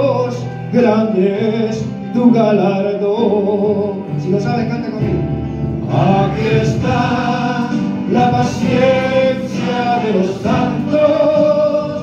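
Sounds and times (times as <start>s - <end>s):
man singing a hymn over pa: 0.0s - 12.0s
voices singing along: 5.9s - 12.0s.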